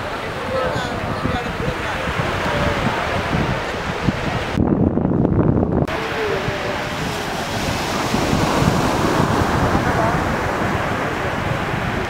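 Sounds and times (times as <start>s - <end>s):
faint voices: 0.0s - 4.5s, 5.9s - 12.0s
surf: 0.0s - 12.0s
wind buffeting rumble: 0.0s - 12.0s
wind rushing over microphone: 0.0s - 12.0s.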